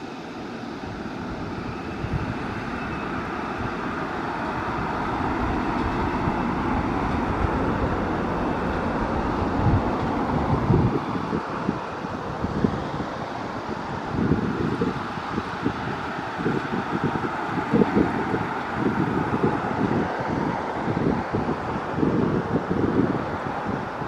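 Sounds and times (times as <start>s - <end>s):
distant electric trains rumbling: 0.0s - 24.0s
urban noise: 0.0s - 24.0s
wind buffeting microphone: 0.5s - 24.0s.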